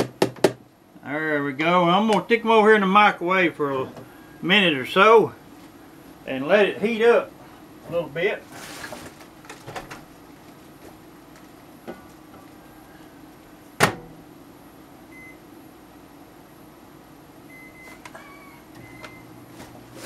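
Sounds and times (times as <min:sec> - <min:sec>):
microwave humming: 0:00.0 - 0:20.0
microwave door shutting: 0:13.8 - 0:14.2.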